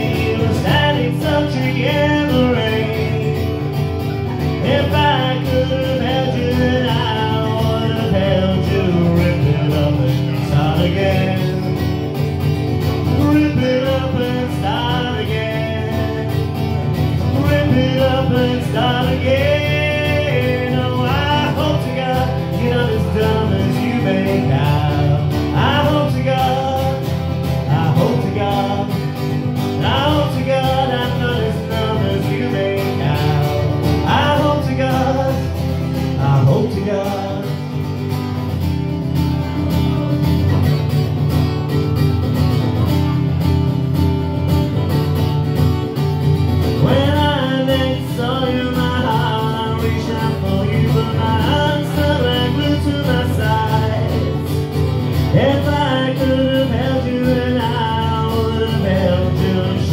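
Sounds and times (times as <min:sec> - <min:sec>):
man singing into microphone: 0:00.0 - 0:12.1, 0:13.0 - 0:37.9, 0:46.8 - 0:59.9
guitar strumming: 0:00.0 - 0:59.9.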